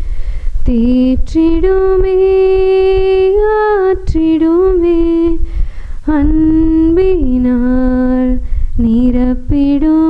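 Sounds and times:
singer breathing: 0:00.0 - 0:00.6, 0:05.4 - 0:06.0, 0:08.4 - 0:08.8
woman singing unaccompanied: 0:00.6 - 0:10.0.

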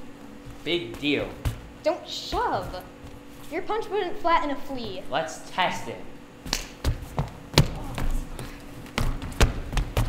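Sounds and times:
footsteps on wooden stage floor: 0:00.0 - 0:03.8, 0:04.6 - 0:05.1, 0:06.7 - 0:10.0.

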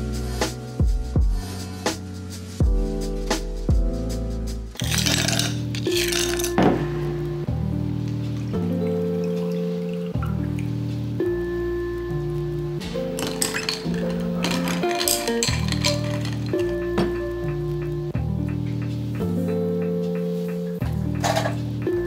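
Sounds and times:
slow held chords music: 0:00.0 - 0:22.0
ice cubes clinking in glass: 0:04.8 - 0:06.8, 0:13.1 - 0:17.2, 0:21.2 - 0:21.6.

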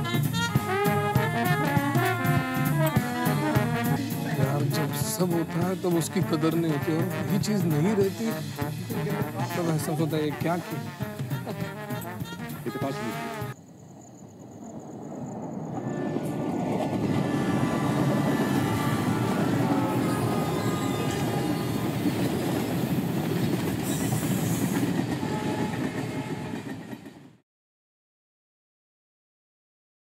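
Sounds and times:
passenger train rumbling past: 0:00.0 - 0:13.6, 0:14.6 - 0:27.4.

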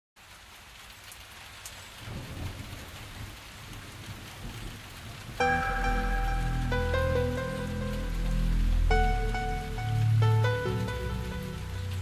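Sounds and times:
low rumble: 0:05.4 - 0:12.0
steady hissing noise: 0:05.4 - 0:12.0.

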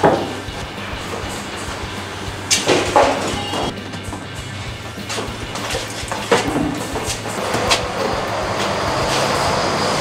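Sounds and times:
sharp knocks of boards: 0:00.0 - 0:00.4, 0:02.5 - 0:03.7
steady rumbling din: 0:00.0 - 0:10.0.

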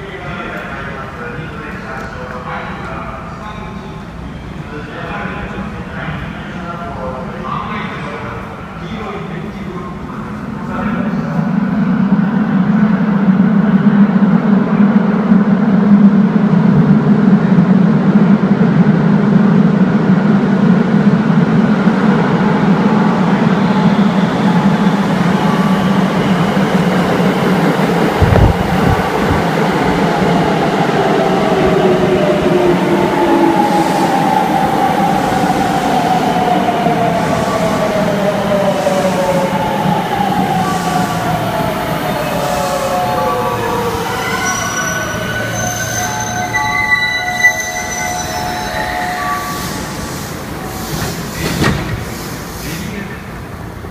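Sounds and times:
train rumble: 0:00.0 - 0:46.6, 0:47.4 - 0:53.9.

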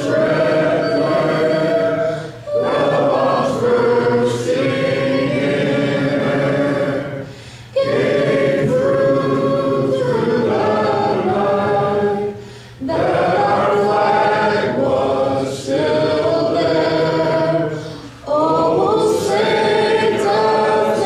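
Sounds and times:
people singing in unison: 0:00.0 - 0:21.0.

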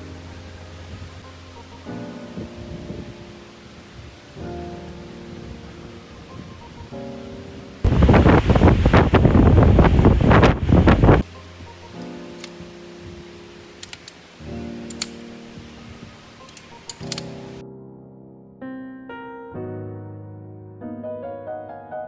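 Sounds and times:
soft instrumental music: 0:00.0 - 0:22.0
wind gusting on microphone: 0:02.2 - 0:11.3, 0:15.5 - 0:16.8.

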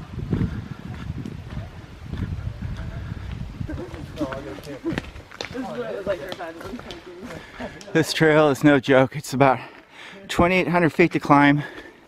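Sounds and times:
footsteps on rocky trail: 0:00.2 - 0:08.0
indistinct voices talking: 0:01.5 - 0:11.6.

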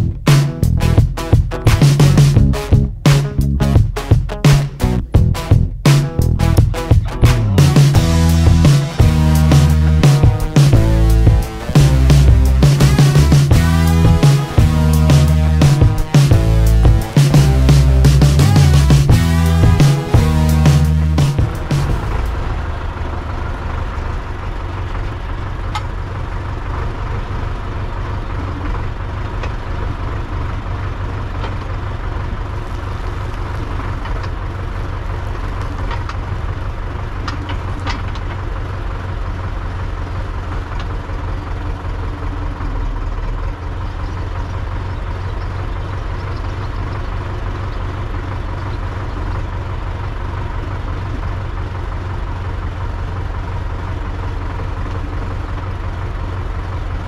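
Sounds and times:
diesel engine idling: 0:00.0 - 0:57.0.

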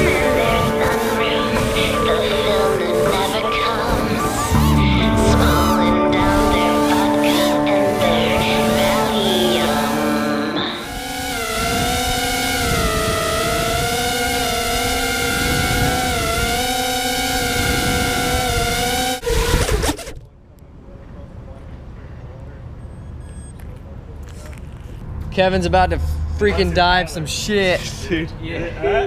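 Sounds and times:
drone crashing: 0:00.0 - 0:19.3
drone motors whining: 0:00.0 - 0:20.2.

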